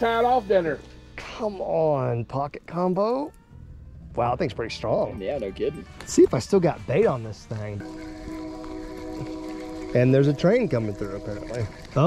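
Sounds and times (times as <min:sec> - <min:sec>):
train horn: 0:06.8 - 0:12.0.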